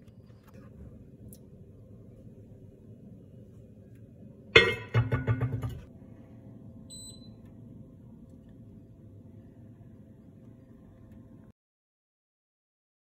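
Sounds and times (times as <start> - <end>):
faint steady hum: 0.0 - 11.5
cast-iron lid clattering on pot: 4.6 - 5.9.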